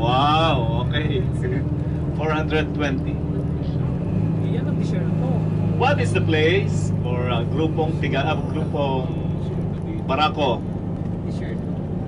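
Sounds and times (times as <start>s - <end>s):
coach engine droning: 0.0s - 12.0s.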